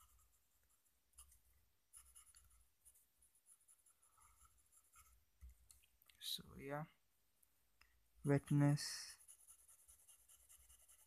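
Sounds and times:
pen nib scratching on paper: 0:00.0 - 0:05.2, 0:08.8 - 0:11.0.

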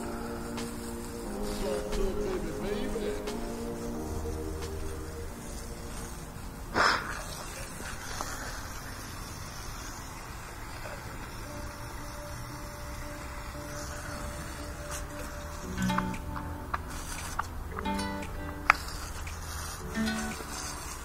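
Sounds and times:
water spraying from hose: 0:00.0 - 0:21.0.

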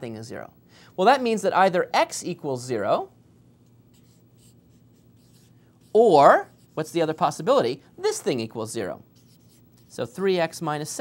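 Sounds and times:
marker pen writing: 0:03.9 - 0:07.1, 0:09.1 - 0:10.1.

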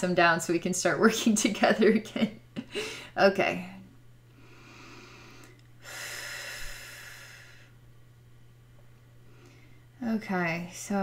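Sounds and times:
woman taking a long breath: 0:04.4 - 0:07.8.

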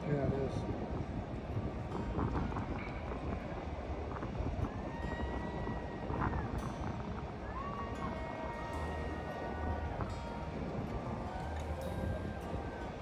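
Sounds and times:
faint music with held notes: 0:00.0 - 0:13.0
wind buffeting microphone: 0:00.0 - 0:13.0.

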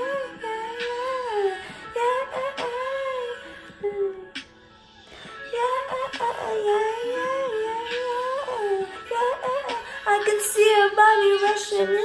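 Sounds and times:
woman singing wordless melody: 0:00.0 - 0:04.4, 0:05.3 - 0:12.0.

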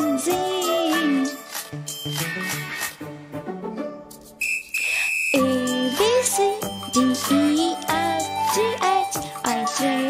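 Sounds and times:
music with sustained notes: 0:00.0 - 0:04.4, 0:05.4 - 0:10.0
high steady whistle-like tone: 0:04.4 - 0:07.6.

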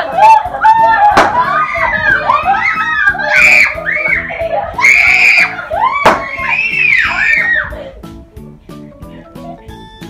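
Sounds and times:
children shrieking: 0:00.0 - 0:07.9
sharp knock: 0:01.2 - 0:01.4, 0:06.1 - 0:06.3.

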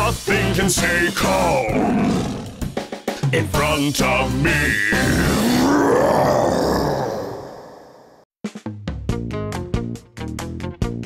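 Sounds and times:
children's song: 0:00.0 - 0:01.8, 0:03.2 - 0:05.2.

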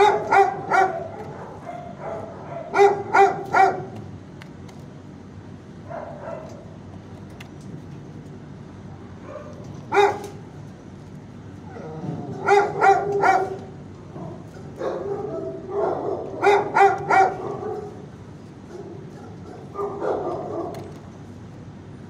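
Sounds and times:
dog barking: 0:00.0 - 0:04.0, 0:05.8 - 0:06.6, 0:09.2 - 0:10.4, 0:12.3 - 0:18.0, 0:18.7 - 0:20.9.

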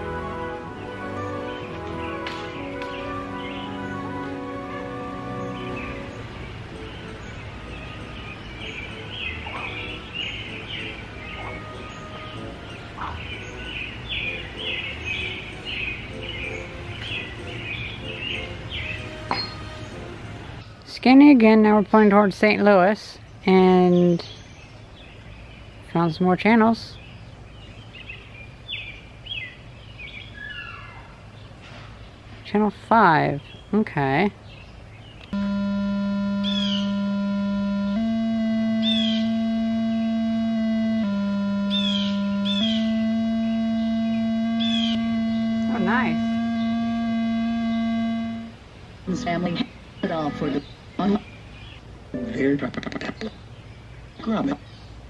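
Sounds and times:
low outdoor background noise: 0:00.0 - 0:55.0
birds chirping: 0:00.7 - 0:04.4, 0:05.0 - 0:20.7, 0:33.4 - 0:55.0
buzzy electronic meter tone: 0:35.4 - 0:48.6.

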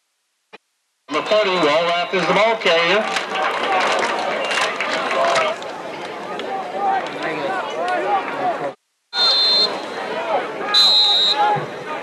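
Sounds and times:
crowd noise: 0:01.1 - 0:12.0.

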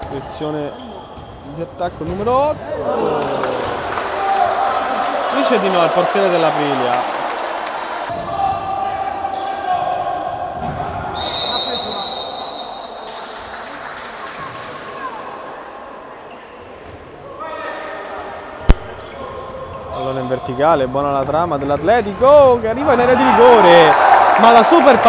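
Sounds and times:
short high referee whistle: 0:11.2 - 0:13.3
players shouting: 0:22.8 - 0:25.0.

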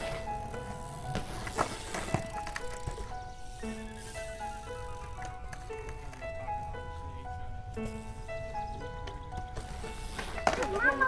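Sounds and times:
melody of held notes: 0:00.0 - 0:11.0.

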